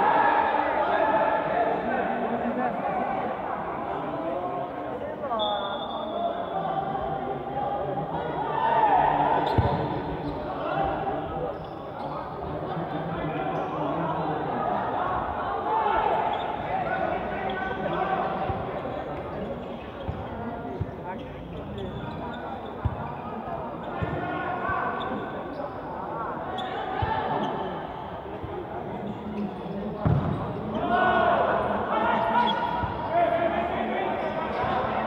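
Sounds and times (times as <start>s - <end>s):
ball thuds echoing in hall: 9.4s - 10.2s, 30.0s - 30.8s.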